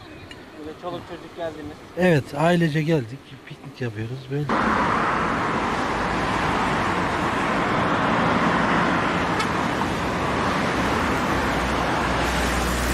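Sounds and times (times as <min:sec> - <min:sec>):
outdoor background rush: 0:00.0 - 0:12.9.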